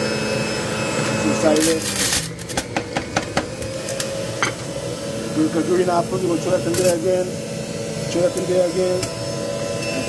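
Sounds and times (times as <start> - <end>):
juicer motor running: 0.0 - 10.0.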